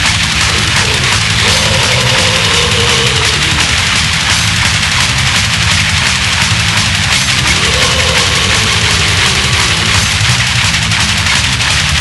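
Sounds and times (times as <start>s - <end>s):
heavy metal music: 0.0s - 12.0s.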